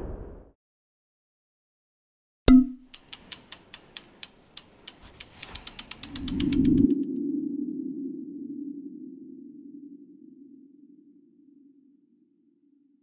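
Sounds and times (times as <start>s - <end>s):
sharp ticks speeding up: 2.7s - 7.0s.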